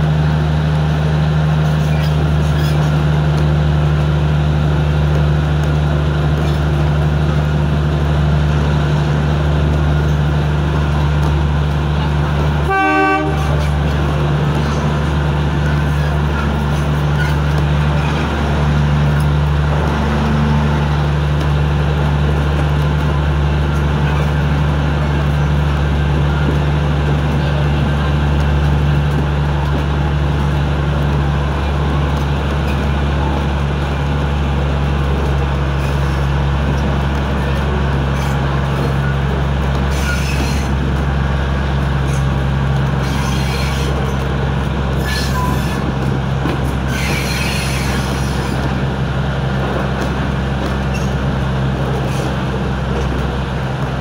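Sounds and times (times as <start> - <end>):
train engine drone: 0.0 - 54.0
train horn toot: 12.6 - 13.7.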